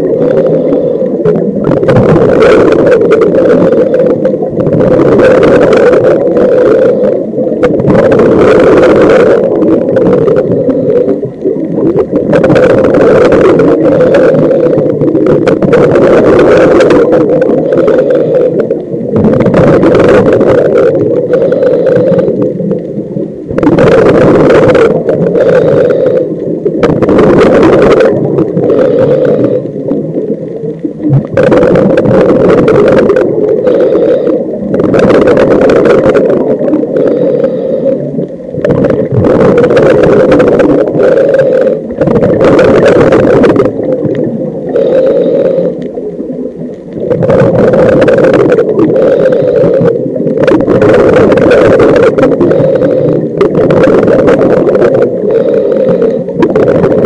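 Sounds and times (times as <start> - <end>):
muffled underwater noise: 0.0 - 57.0.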